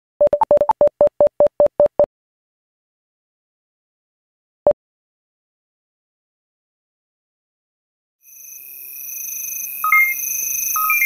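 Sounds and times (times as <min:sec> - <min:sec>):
short electronic beeps: 0:09.9 - 0:10.2, 0:10.8 - 0:11.0.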